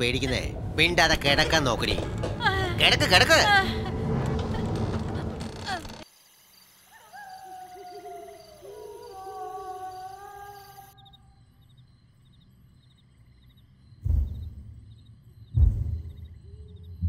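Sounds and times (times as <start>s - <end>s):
insects chirring: 0.0s - 17.0s
woman's voice: 2.4s - 6.0s
owl-like hooting calls: 6.9s - 11.1s.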